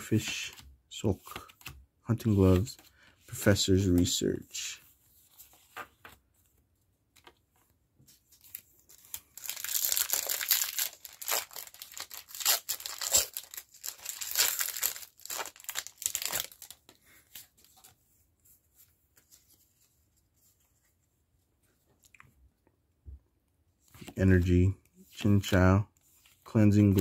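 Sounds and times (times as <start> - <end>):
foil wrapper tearing and crinkling: 9.1 - 16.8.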